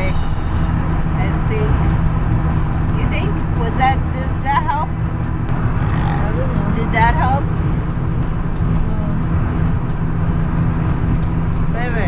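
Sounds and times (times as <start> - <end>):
road and engine rumble in car: 0.0 - 12.0
wavering vocal phrases: 5.8 - 6.9.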